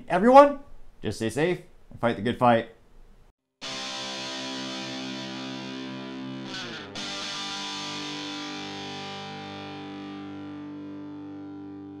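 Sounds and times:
distorted electric guitar chords: 3.6s - 12.0s.

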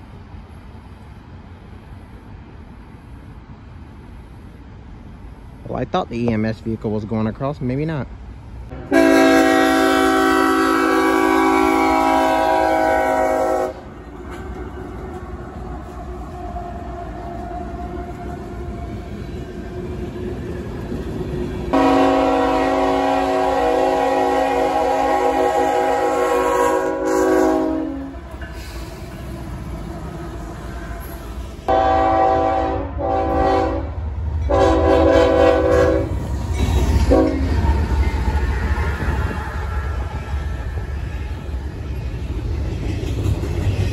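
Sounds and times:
passing train rumble: 0.0s - 43.9s
locomotive air horn blasts: 8.7s - 13.9s, 21.7s - 29.6s, 30.9s - 36.2s, 37.0s - 37.5s.

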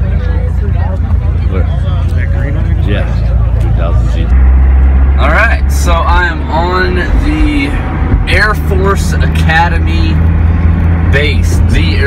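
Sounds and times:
voices: 0.0s - 10.3s
car driving heard from inside: 0.0s - 12.0s
low vehicle rumble: 0.0s - 12.0s.

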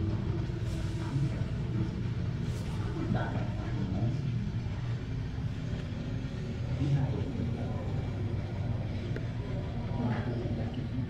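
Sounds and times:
faint indistinct voices: 0.0s - 11.0s
low indoor rumble: 0.0s - 11.0s.

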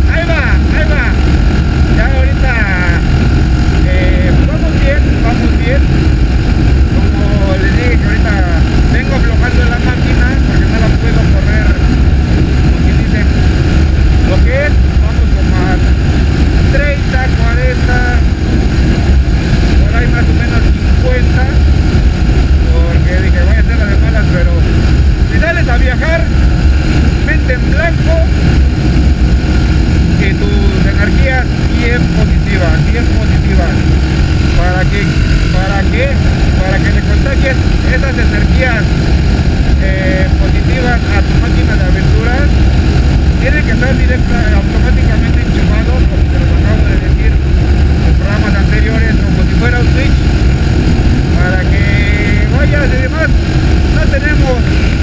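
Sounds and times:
motorcycle engine rumble: 0.0s - 55.0s
wind noise on microphone: 0.0s - 55.0s.

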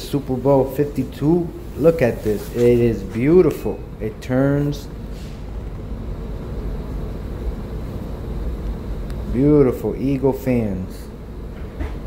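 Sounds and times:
steady low rumble with hiss: 0.0s - 12.0s.

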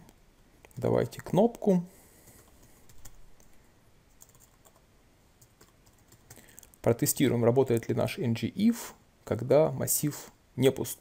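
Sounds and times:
keyboard typing: 2.4s - 6.8s.

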